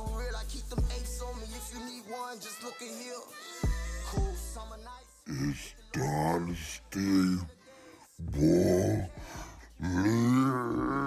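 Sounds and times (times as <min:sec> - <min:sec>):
man holding long vocal note: 0:05.3 - 0:07.5, 0:08.2 - 0:11.0.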